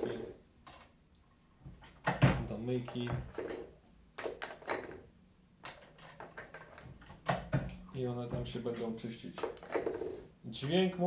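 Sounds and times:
reloading press clicks and knocks: 0:05.6 - 0:09.6.

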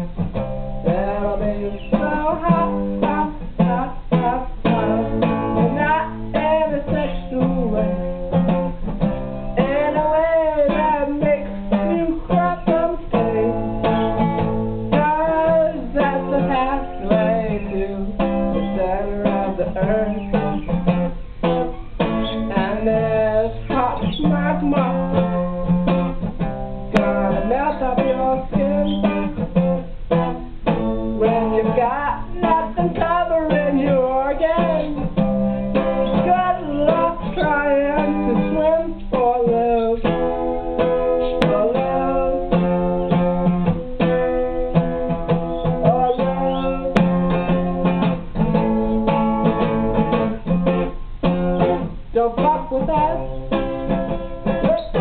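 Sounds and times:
acoustic guitar strumming: 0:00.0 - 0:55.0
person singing: 0:00.8 - 0:08.7, 0:09.6 - 0:21.0, 0:21.6 - 0:26.0, 0:26.9 - 0:29.8, 0:30.7 - 0:50.9, 0:51.6 - 0:55.0.

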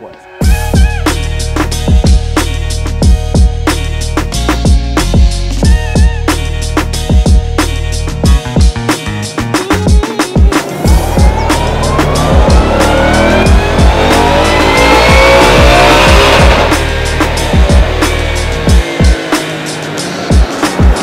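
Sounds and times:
music with steady drum beat: 0:00.4 - 0:21.0
car engine revving at full throttle: 0:10.6 - 0:21.0.

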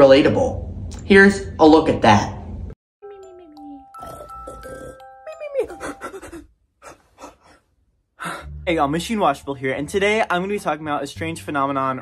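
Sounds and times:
bright chime-like music tones: 0:03.0 - 0:06.2
person panting heavily: 0:05.9 - 0:07.6.

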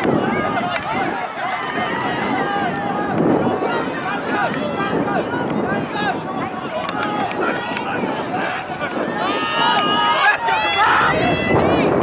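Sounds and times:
people shouting outdoors: 0:00.0 - 0:12.0.

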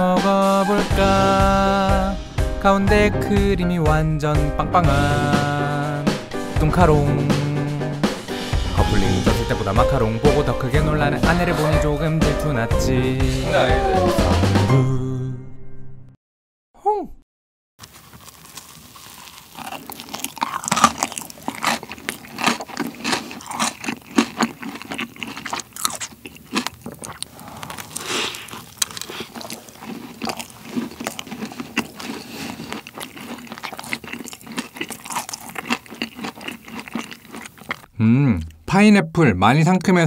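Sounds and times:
crunchy chewing: 0:17.8 - 0:38.6.

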